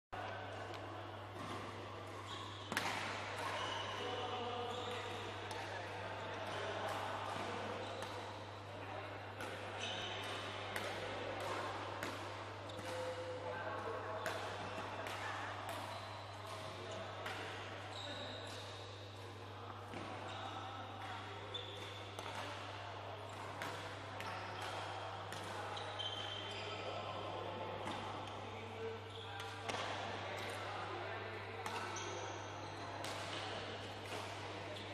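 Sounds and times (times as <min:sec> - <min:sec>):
badminton rackets hitting shuttlecock: 0:01.4 - 0:03.8, 0:21.0 - 0:22.6, 0:23.3 - 0:25.6
shoe squeaks on court floor: 0:02.2 - 0:02.7, 0:04.6 - 0:05.2, 0:09.8 - 0:10.2, 0:17.9 - 0:18.8, 0:21.5 - 0:22.0, 0:25.6 - 0:26.9.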